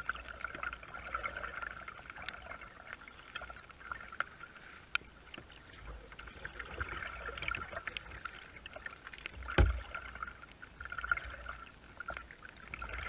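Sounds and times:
rain pattering on plastic kayak: 0.0 - 13.0.

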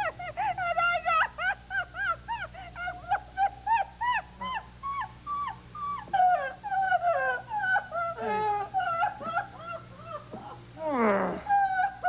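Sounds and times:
woman laughing hard: 0.0 - 12.0.

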